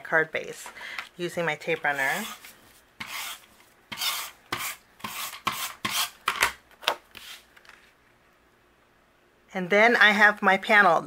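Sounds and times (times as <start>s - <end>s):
tape runner strokes on card: 7.1s - 7.5s.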